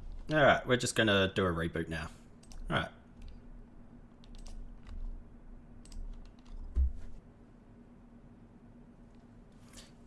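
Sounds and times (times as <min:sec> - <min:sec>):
faint steady hum: 0:00.0 - 0:10.0
keyboard and mouse clicks: 0:04.1 - 0:05.1, 0:05.8 - 0:07.0.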